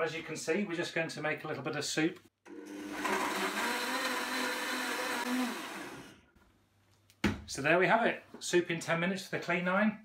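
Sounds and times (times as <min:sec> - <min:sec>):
blender motor running: 0:02.5 - 0:06.3.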